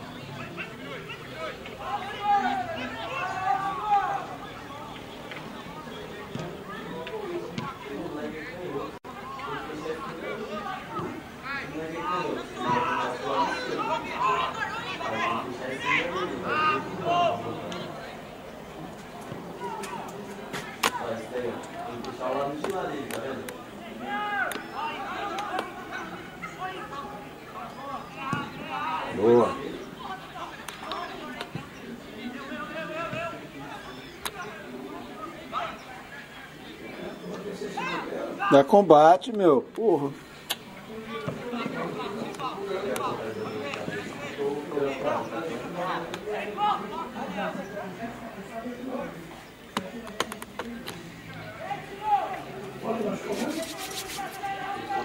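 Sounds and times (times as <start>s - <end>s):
men calling and shouting: 0.0s - 55.0s
men shouting: 1.0s - 4.9s, 12.0s - 18.0s
loud drawn-out shout: 1.8s - 4.7s, 12.1s - 17.6s, 23.9s - 26.9s.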